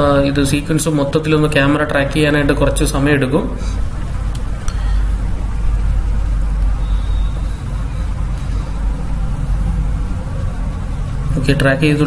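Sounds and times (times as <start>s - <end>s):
steady low rumble with hiss: 0.0s - 12.0s.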